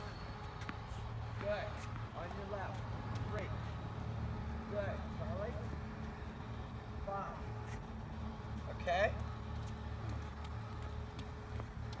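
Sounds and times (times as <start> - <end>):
tennis balls hit and bouncing: 0.0 - 3.4.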